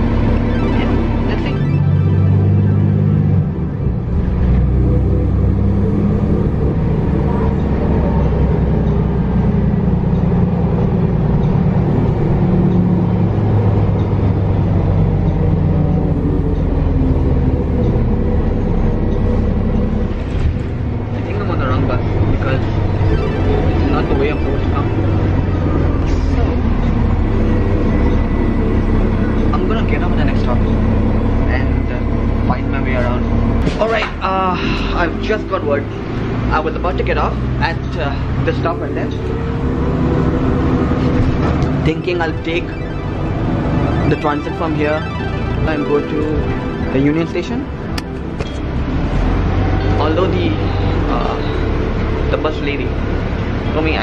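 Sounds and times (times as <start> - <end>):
bus engine drone: 0.0 - 54.0
road noise: 0.0 - 54.0
indistinct voices: 5.8 - 54.0.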